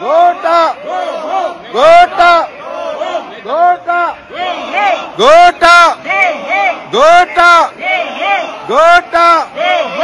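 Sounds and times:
loud paired shouts: 0.0 - 10.0.

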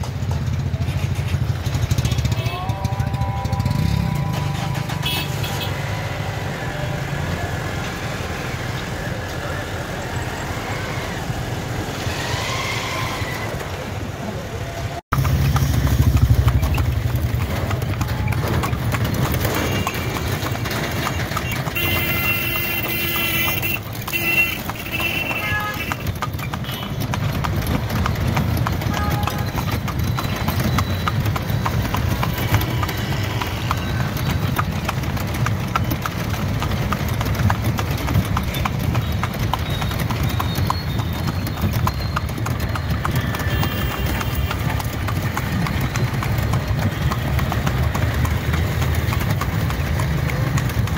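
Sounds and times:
horse hooves clip-clopping on pavement: 15.2 - 50.9.

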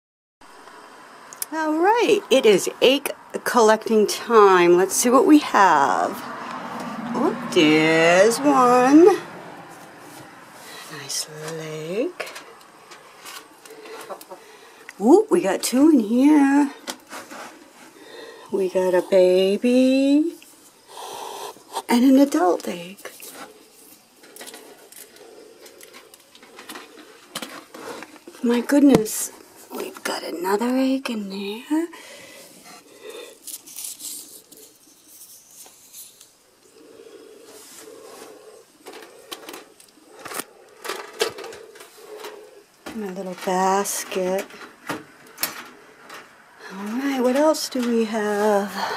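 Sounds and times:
light clicks and knocks of eggs: 12.3 - 15.0.

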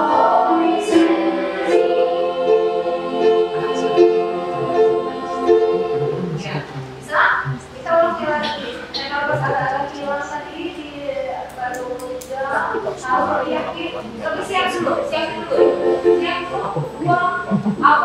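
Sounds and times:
electronic keyboard: 0.0 - 7.8, 12.6 - 18.0
small choir singing: 0.0 - 9.9, 12.4 - 18.0.

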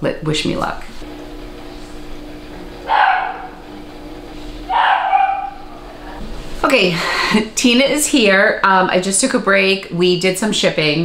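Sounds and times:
dog barking: 2.8 - 3.6, 4.7 - 5.9.

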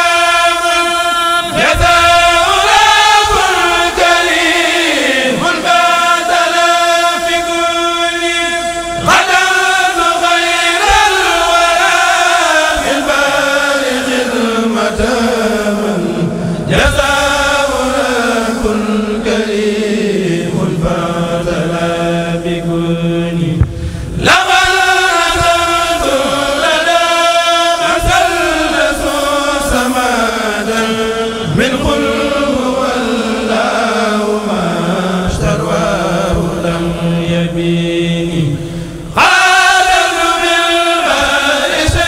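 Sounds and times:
men chanting without instruments: 0.0 - 42.0.

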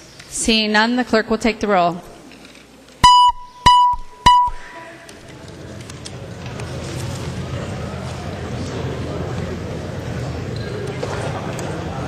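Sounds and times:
short electronic beeps: 3.0 - 4.8.

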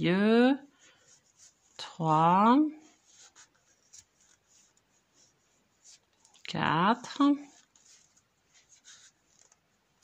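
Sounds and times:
yarn rustling on crochet hook: 0.1 - 10.0.

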